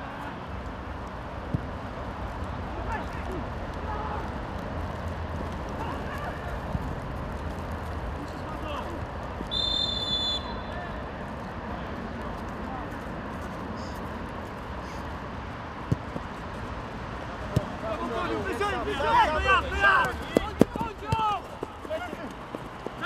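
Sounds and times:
referee's whistle blast: 9.5 - 10.8
ball kicks: 15.8 - 16.3, 17.4 - 17.8
distant players shouting: 17.4 - 23.0.

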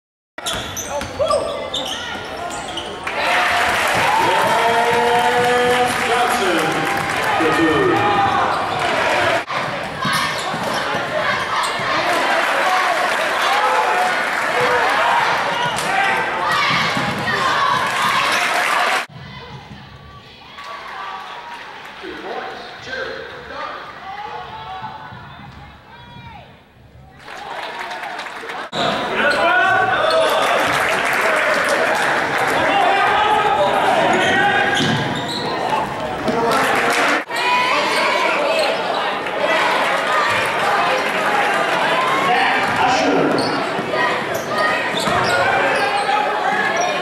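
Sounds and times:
crowd voices and shouts: 0.4 - 47.0
basketball bouncing on gym floor: 16.6 - 17.4.

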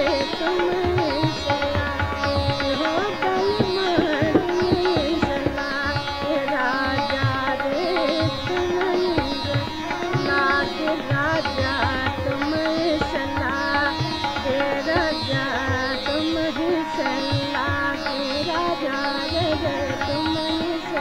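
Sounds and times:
instrumental accompaniment: 0.0 - 21.0
woman singing: 0.0 - 21.0.

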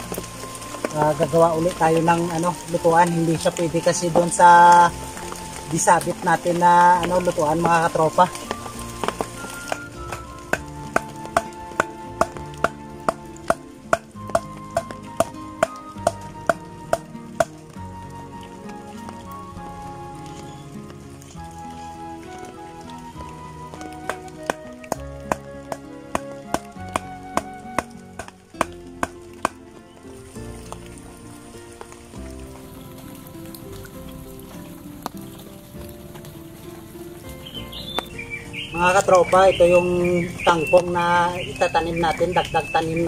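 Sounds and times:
instrumental background music: 0.0 - 43.0.

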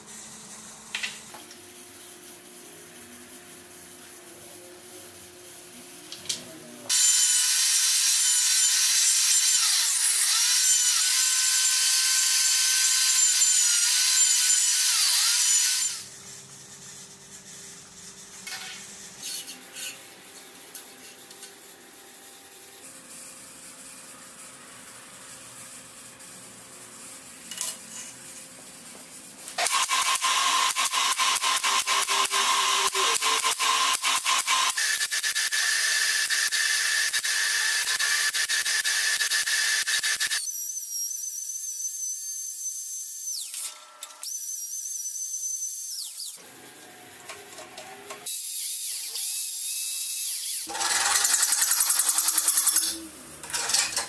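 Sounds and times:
steel parts handled on steel table: 18.4 - 20.1, 52.1 - 54.0.

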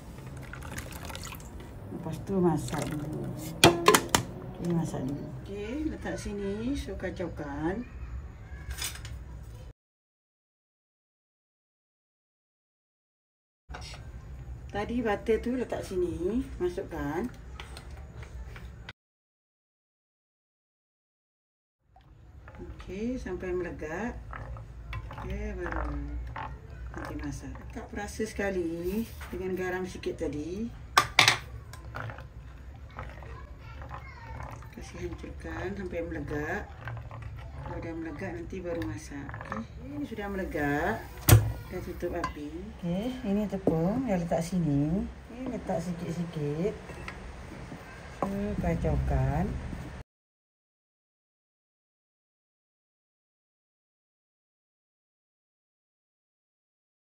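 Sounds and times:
liquid sloshing: 0.0 - 5.4, 22.0 - 42.8
spatula scraping pot: 22.4 - 44.7.

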